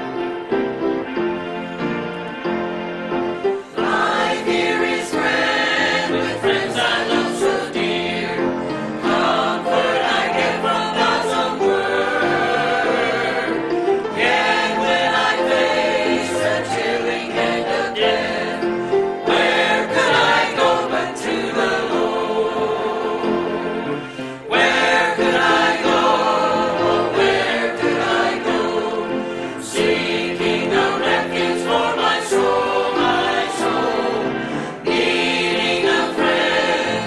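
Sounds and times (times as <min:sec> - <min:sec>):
choir singing a hymn: 0:00.0 - 0:37.0.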